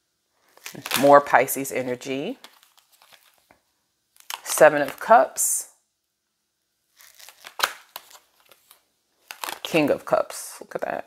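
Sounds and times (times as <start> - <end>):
cards rustling and flicking: 2.4 - 3.5, 7.0 - 9.9
sharp papery snaps: 7.0 - 9.8.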